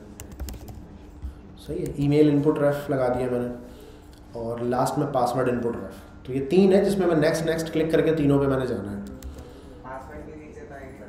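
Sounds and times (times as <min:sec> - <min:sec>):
computer keyboard typing: 0:00.2 - 0:00.8, 0:09.0 - 0:09.5.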